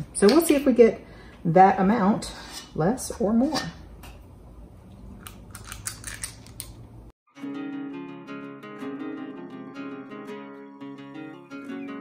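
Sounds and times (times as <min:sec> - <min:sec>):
plucked-string background music: 0:07.3 - 0:12.0.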